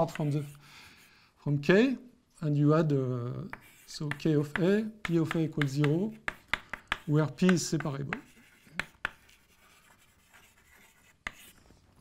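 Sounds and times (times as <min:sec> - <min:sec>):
chalk scratching on blackboard: 0:00.0 - 0:00.6, 0:03.5 - 0:11.7
chalk tap: 0:03.5 - 0:11.5.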